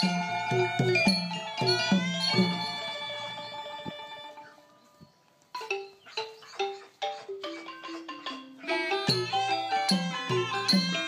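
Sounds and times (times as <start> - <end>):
mallet instrument music: 0.0 - 11.0.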